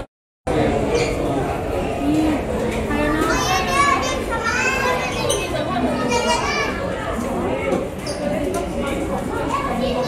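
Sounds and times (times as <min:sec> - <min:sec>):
people talking: 0:00.0 - 0:10.0
children calling out and chattering: 0:00.5 - 0:10.0.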